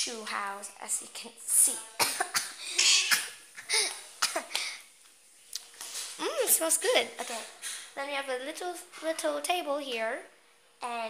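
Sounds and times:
girl coughing: 0:02.0 - 0:04.6.

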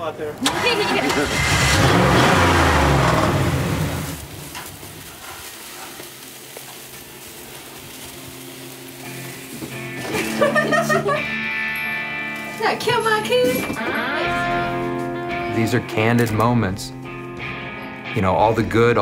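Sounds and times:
voices: 0:00.0 - 0:02.2
car engine revving: 0:00.4 - 0:04.6
meat sizzling on grill: 0:02.1 - 0:13.3.

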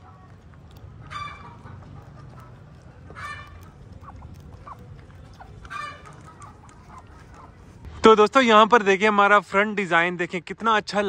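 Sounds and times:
poultry calling: 0:00.0 - 0:07.9.

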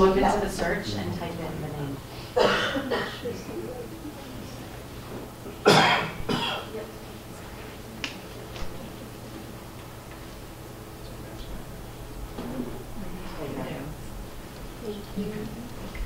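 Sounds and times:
low murmuring: 0:00.0 - 0:09.6, 0:10.7 - 0:16.0
steady low hum: 0:00.0 - 0:16.0
person coughing: 0:02.4 - 0:03.3, 0:05.6 - 0:06.7.

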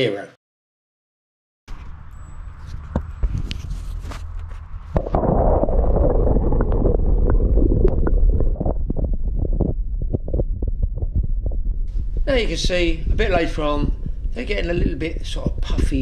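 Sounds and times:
muffled underwater rumbling: 0:02.9 - 0:16.0.

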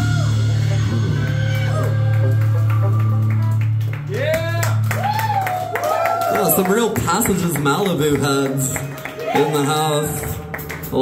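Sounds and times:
scattered clapping: 0:01.5 - 0:11.0.

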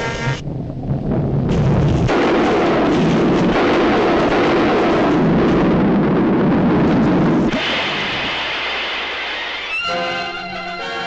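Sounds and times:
orchestral music: 0:09.7 - 0:11.0.

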